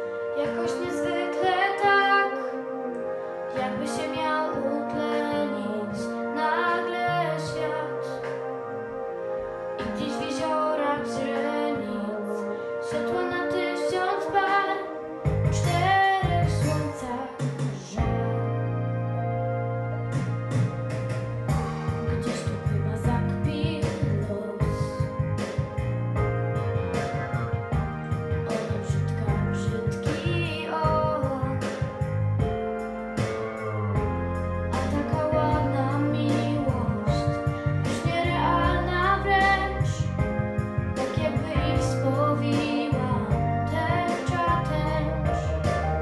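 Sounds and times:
instrumental accompaniment: 0.0s - 46.0s
pop ballad melody line: 0.0s - 46.0s
girl singing: 0.4s - 8.3s, 9.8s - 18.5s, 22.1s - 25.1s, 28.5s - 31.8s, 34.7s - 40.3s, 41.0s - 46.0s
bass part: 15.2s - 46.0s.

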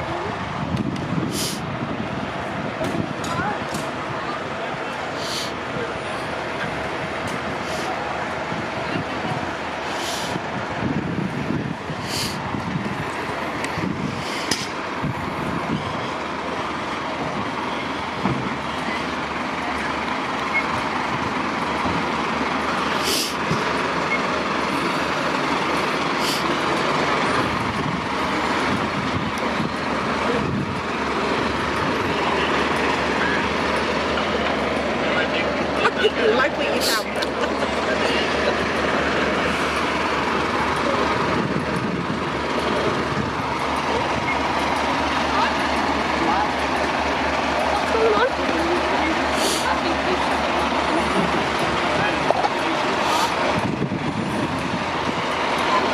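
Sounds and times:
diesel engines running: 0.0s - 55.9s
short high hisses: 1.3s - 1.6s, 5.2s - 5.6s.

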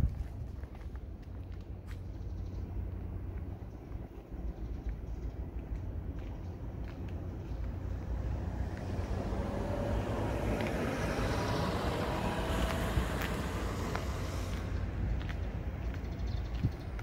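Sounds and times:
low traffic rumble: 0.0s - 17.0s
vehicle passing: 5.4s - 17.0s.

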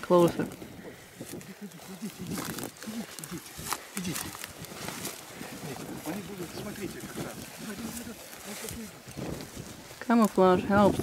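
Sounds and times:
footsteps through tall grass: 0.0s - 11.0s
murmured voices: 0.1s - 9.5s.

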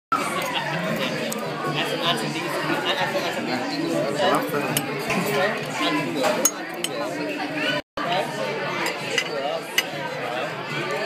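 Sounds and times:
many voices chattering: 0.1s - 11.0s.

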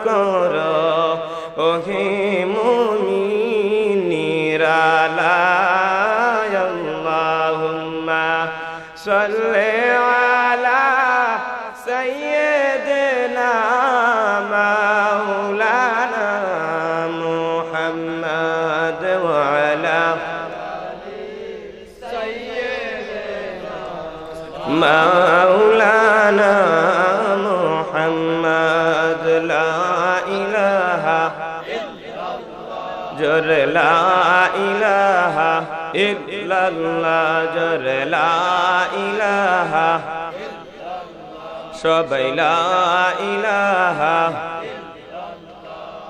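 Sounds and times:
man singing into a microphone: 0.0s - 20.9s, 21.7s - 46.0s
men chanting a hymn: 0.0s - 46.0s.

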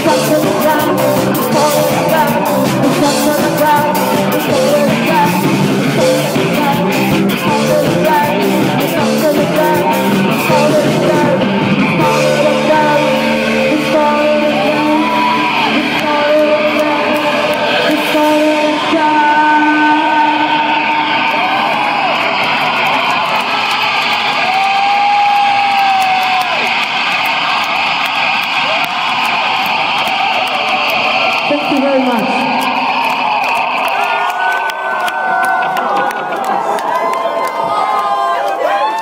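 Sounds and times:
amplified noise: 0.0s - 34.9s
sliding guitar tones: 0.0s - 36.8s
live rock band: 0.0s - 38.8s.

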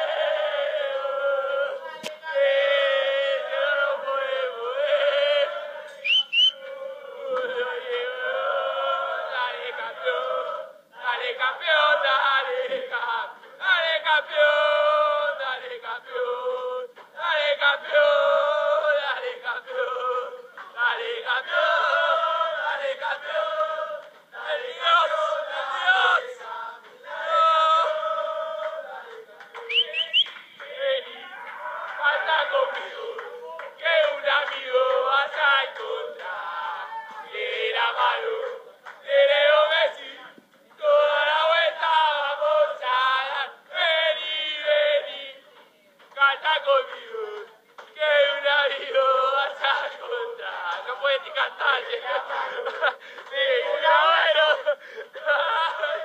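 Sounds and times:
group chanting a song: 0.0s - 56.0s
quick rising whistles: 6.0s - 6.6s, 29.7s - 30.4s
short shrill rising whistles: 6.0s - 6.6s.

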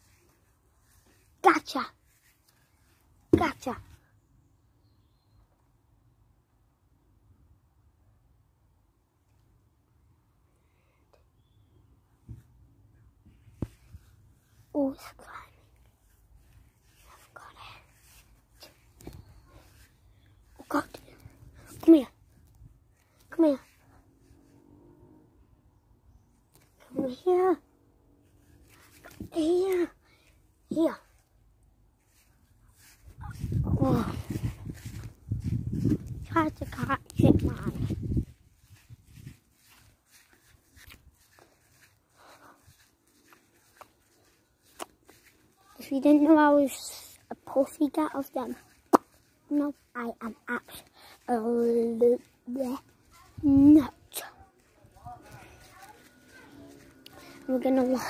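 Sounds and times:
boy whispering: 14.6s - 22.2s, 32.8s - 35.5s, 36.2s - 38.0s, 49.5s - 58.0s.

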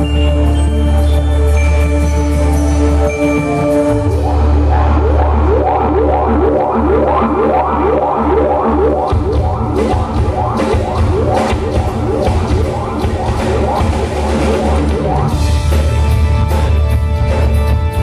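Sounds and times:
deep sustained bass: 0.0s - 18.0s
drums: 0.0s - 18.0s.

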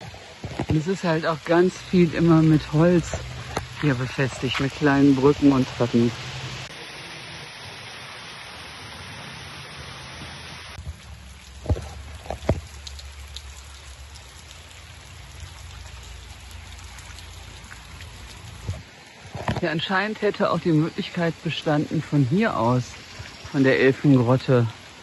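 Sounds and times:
small stream rushing: 0.0s - 25.0s.

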